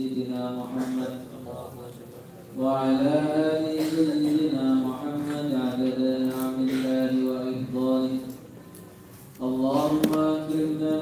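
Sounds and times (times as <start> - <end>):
man chanting devotional recitation: 0.0 - 8.6, 9.4 - 11.0.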